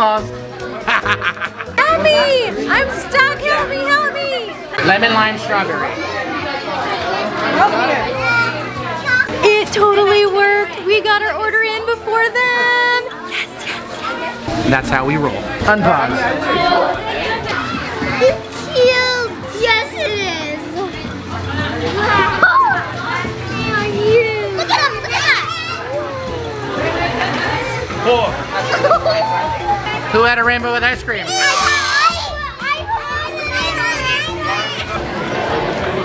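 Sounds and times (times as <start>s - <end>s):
music playing: 0.0s - 36.0s
voices chattering: 0.0s - 36.0s
children talking and squealing: 5.8s - 9.8s, 12.9s - 14.5s, 16.2s - 30.1s, 31.3s - 35.8s.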